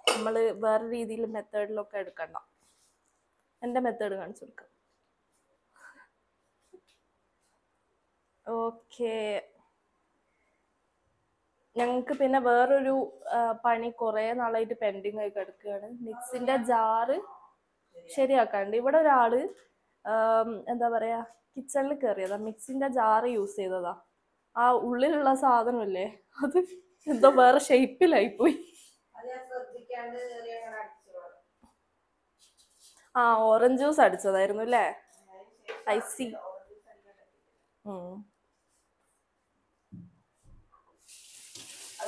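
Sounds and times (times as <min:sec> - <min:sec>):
woman talking: 0:00.0 - 0:02.5, 0:03.6 - 0:04.6, 0:11.8 - 0:17.5, 0:24.6 - 0:29.4, 0:33.2 - 0:37.2, 0:37.9 - 0:38.3
soft thump: 0:39.9 - 0:40.6
water running from tap: 0:41.0 - 0:42.0.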